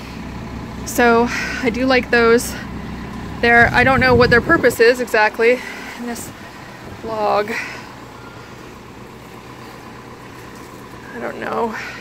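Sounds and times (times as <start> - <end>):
outdoor background noise: 0.0 - 12.0
steady low hum: 0.0 - 12.0.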